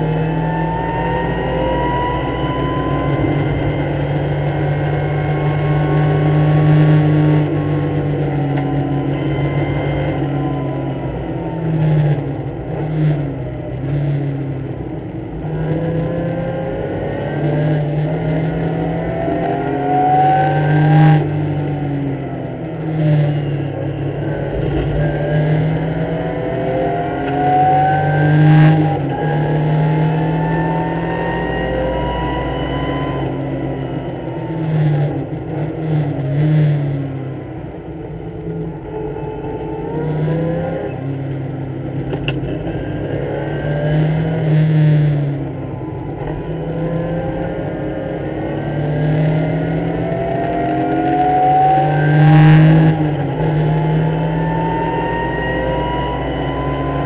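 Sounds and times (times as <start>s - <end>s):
race car engine running hard: 0.0s - 57.0s.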